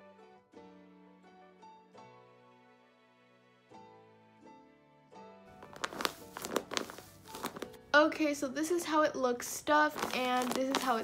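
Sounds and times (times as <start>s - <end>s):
soft background music: 0.0s - 11.0s
taped paper toy crinkling: 5.6s - 7.8s, 9.8s - 11.0s.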